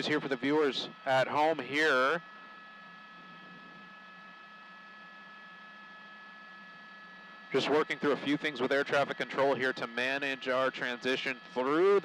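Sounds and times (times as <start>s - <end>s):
helicopter cabin noise: 0.0s - 12.0s.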